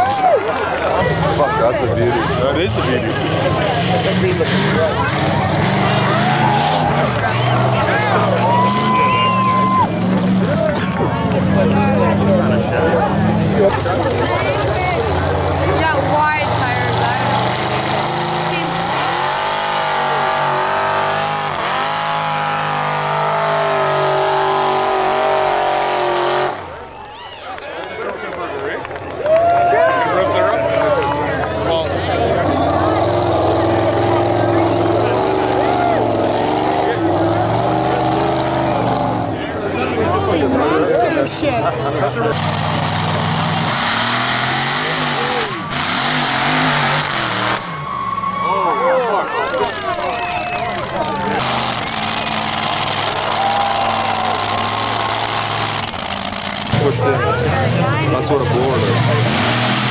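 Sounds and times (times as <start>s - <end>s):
crowd chatter: 0.0s - 59.9s
truck engines revving in mud: 0.0s - 59.9s.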